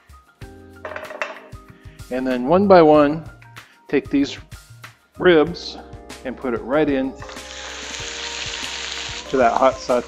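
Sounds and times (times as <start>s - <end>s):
frying pan knocking on grate: 0.8s - 1.5s
background music chord: 1.5s - 10.0s.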